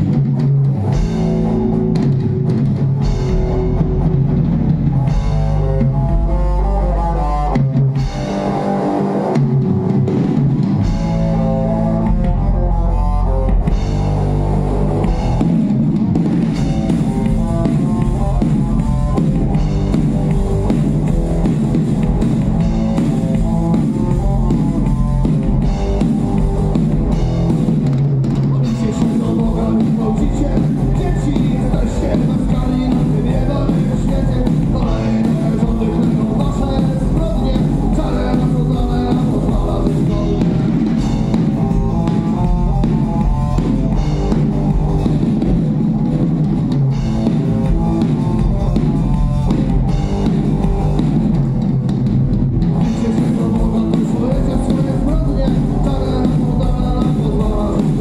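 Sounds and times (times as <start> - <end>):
bass guitar: 0.0 - 58.0
drum kit: 0.0 - 58.0
electric guitar: 0.0 - 58.0
punk rock band playing: 0.0 - 58.0.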